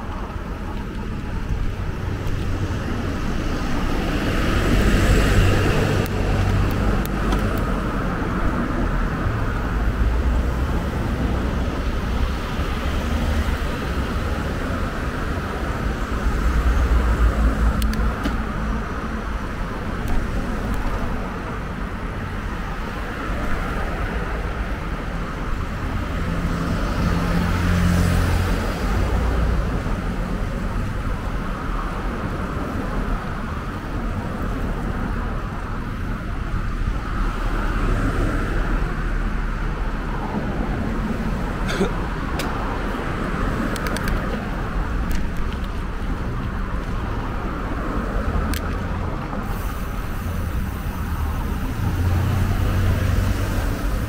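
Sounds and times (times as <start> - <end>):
cars passing: 0.0 - 54.0
road traffic rumble: 0.0 - 54.0.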